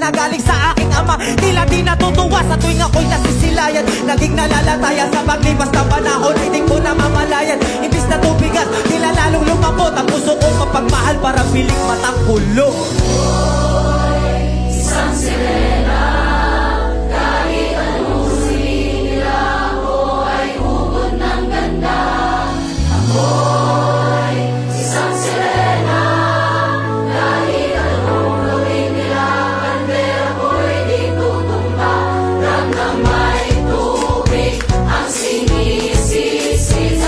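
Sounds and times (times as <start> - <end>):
music with held bass notes: 0.0 - 37.0
mass choir singing: 3.1 - 10.4, 12.7 - 37.0.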